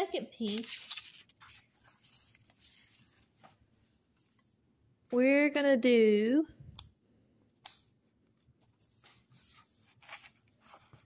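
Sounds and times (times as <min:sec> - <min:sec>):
paper rustling on a table: 0:00.4 - 0:04.6, 0:08.6 - 0:11.0.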